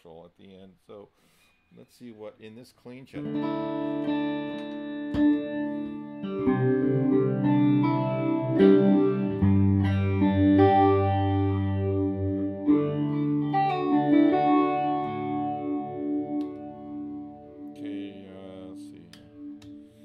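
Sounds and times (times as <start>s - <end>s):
electric guitar chords ringing: 3.2s - 20.0s.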